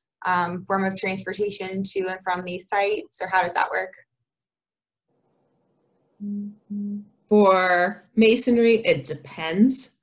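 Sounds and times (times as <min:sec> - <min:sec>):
woman humming: 0:06.2 - 0:07.1.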